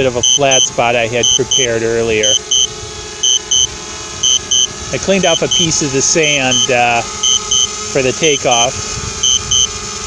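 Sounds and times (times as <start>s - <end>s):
drone propellers humming: 0.0s - 10.0s
high double warning beeps: 0.2s - 5.8s, 6.4s - 7.8s, 9.2s - 9.8s.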